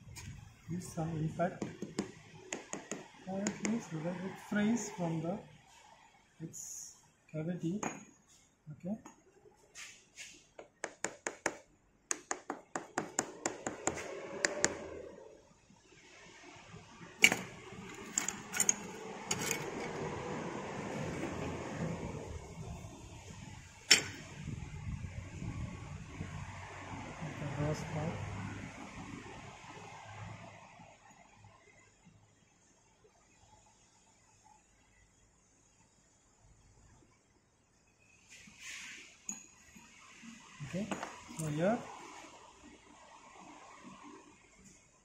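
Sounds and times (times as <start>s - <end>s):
hand tools clicking on metal: 17.2s - 20.0s.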